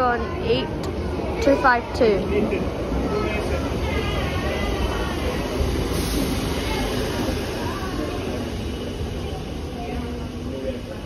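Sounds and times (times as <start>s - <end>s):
train wheels rumbling: 0.8s - 11.0s.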